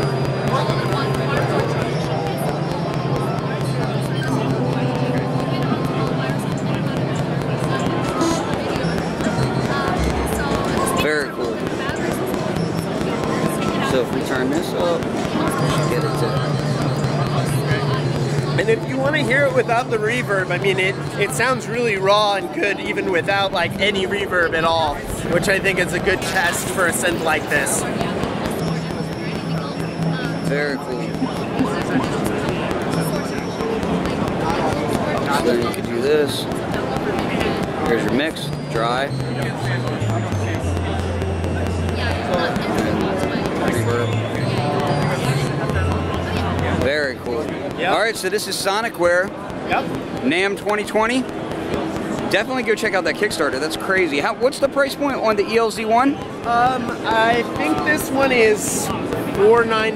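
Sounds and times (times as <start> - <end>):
synthesizer low sustained note: 0.0 - 13.1
crowd chatter: 0.0 - 59.9
synthesizer notes with delay: 0.0 - 59.9.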